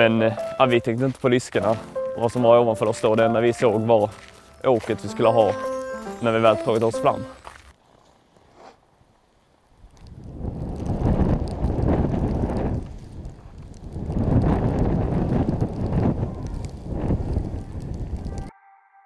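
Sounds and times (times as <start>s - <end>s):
wind buffeting microphone: 9.9s - 18.5s.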